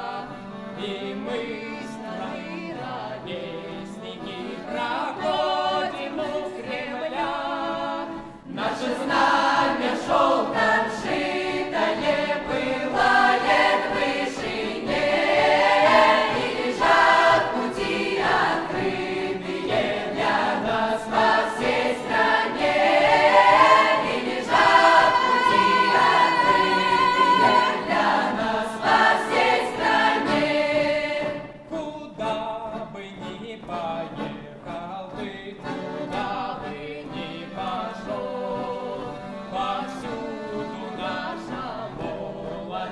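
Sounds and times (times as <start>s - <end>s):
folk instrument ensemble: 0.0s - 42.9s
mixed choir singing folk song: 0.0s - 42.9s.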